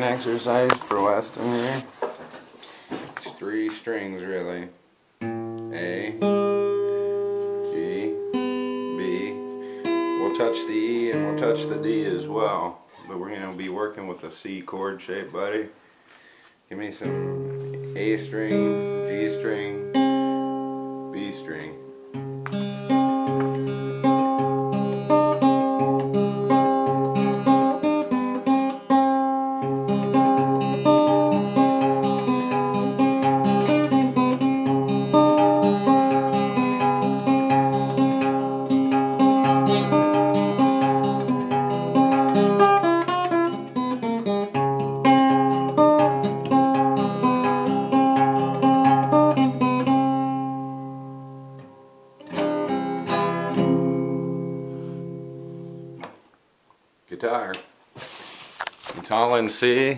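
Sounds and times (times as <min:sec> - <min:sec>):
fingerpicked acoustic guitar: 0:00.0 - 0:03.0, 0:05.2 - 0:13.9, 0:17.0 - 0:56.2.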